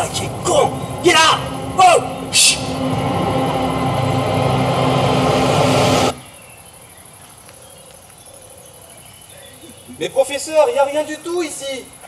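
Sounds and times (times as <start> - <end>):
loud droning noise with low hum: 0.0 - 6.3
faint crickets: 6.2 - 12.0.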